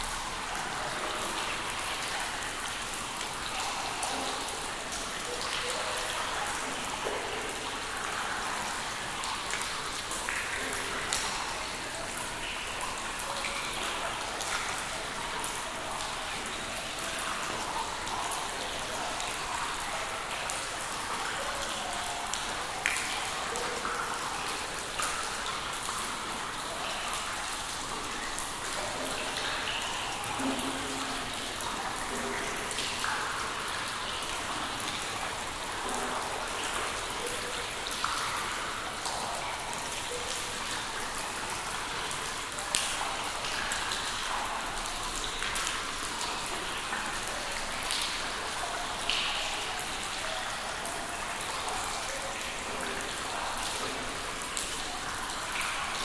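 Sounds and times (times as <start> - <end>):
water dripping in a cave: 0.0 - 56.0.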